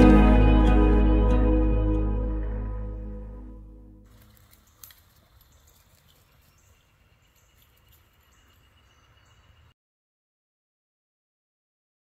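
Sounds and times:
faint outdoor ambience: 0.0 - 9.8.

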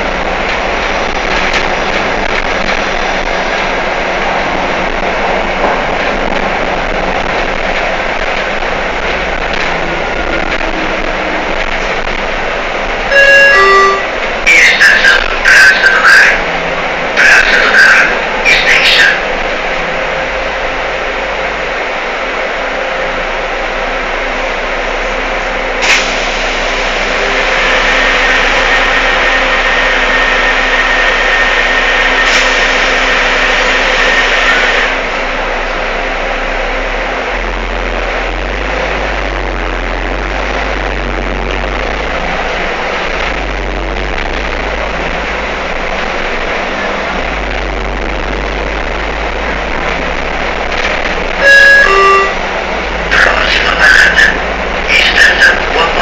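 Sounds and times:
bus cabin running noise: 0.0 - 56.0
steady whine: 0.0 - 56.0
pitched signal: 13.1 - 15.7, 51.4 - 53.4.

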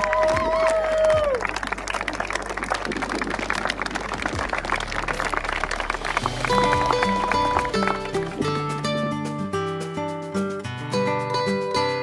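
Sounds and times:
people applauding: 0.0 - 9.1
instrumental music: 3.9 - 12.0.

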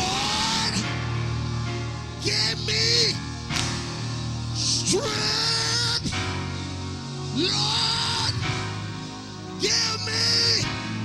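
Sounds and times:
church band sustained chord: 0.0 - 11.0.

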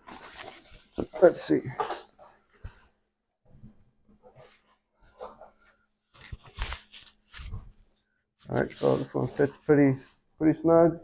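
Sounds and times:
fabric rustling and scraping: 0.0 - 10.3.

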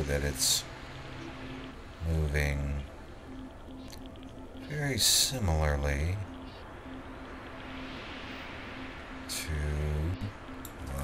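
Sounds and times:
faint low hum: 0.0 - 11.0
recording hiss: 0.0 - 11.0.

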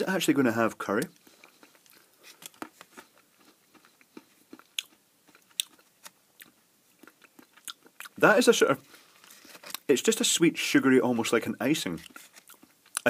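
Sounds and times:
person chewing: 1.0 - 8.2, 12.0 - 13.0.

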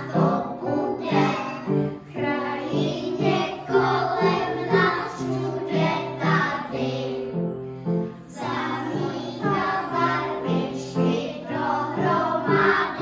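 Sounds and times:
children singing: 0.0 - 13.0
upright piano: 0.0 - 13.0.

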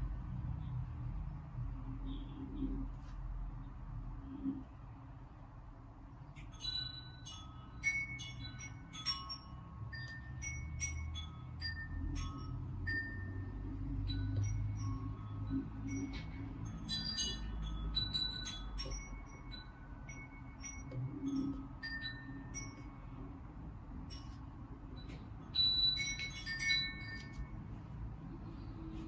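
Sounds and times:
low steady hum: 0.0 - 29.0
light clinks: 6.3 - 27.8
bell-like chime music: 6.5 - 27.8.

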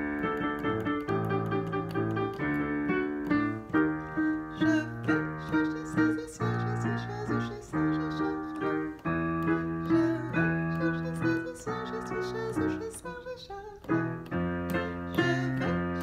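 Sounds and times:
digital piano block chords: 0.0 - 16.0.

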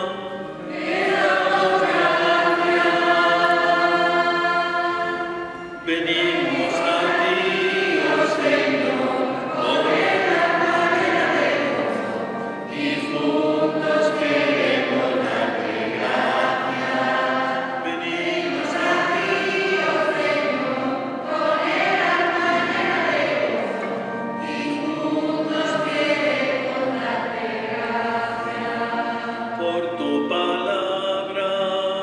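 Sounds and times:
children's choir singing a hymn: 0.0 - 32.0.

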